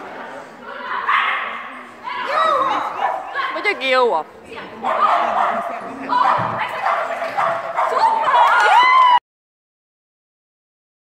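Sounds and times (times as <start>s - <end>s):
dog barking high-pitched: 1.0s - 1.6s, 2.9s - 3.6s, 4.8s - 8.7s.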